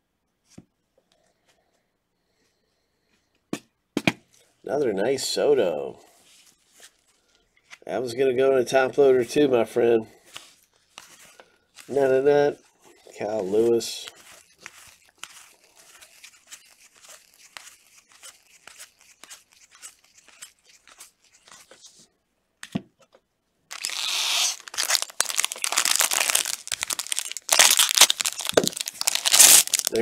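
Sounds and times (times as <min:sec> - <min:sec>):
cards being flipped: 0:10.3 - 0:12.1, 0:13.2 - 0:22.0, 0:23.7 - 0:30.0
foil wrapper tearing and crinkling: 0:14.0 - 0:21.7, 0:23.7 - 0:30.0.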